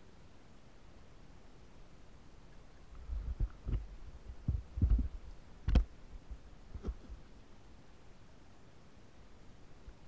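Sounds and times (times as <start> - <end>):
dull low thumps: 3.0 - 7.0.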